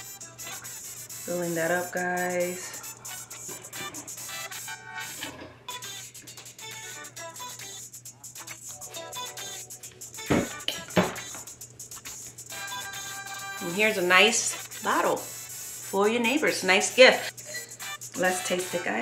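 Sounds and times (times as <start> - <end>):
background music: 0.0 - 15.3.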